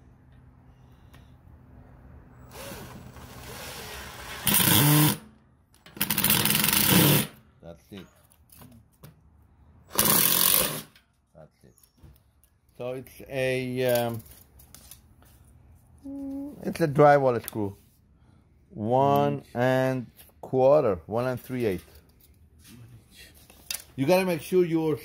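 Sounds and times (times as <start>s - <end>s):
cordless drill driving screws: 2.5s - 5.2s, 6.0s - 7.3s, 9.9s - 10.9s.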